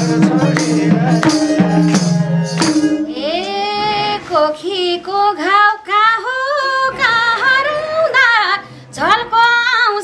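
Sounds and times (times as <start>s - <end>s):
woman singing unaccompanied: 2.9s - 10.0s.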